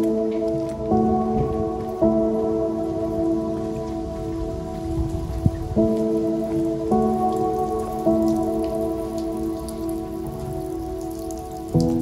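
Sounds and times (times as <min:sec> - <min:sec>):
slow sustained chord music: 0:00.0 - 0:12.0.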